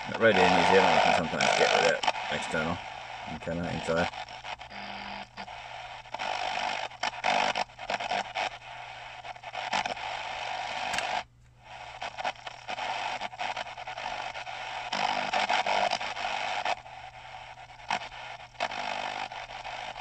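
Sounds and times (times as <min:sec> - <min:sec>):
shortwave radio static and hiss: 0:00.0 - 0:20.0.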